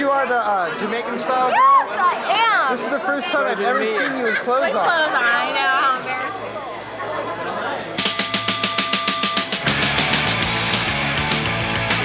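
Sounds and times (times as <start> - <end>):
people chattering: 0.0 - 9.6.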